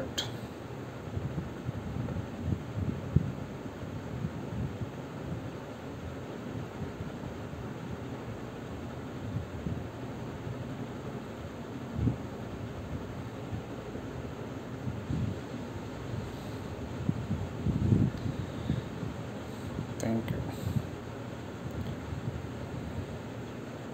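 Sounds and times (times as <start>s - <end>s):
low rumble with hiss: 0.0s - 23.9s.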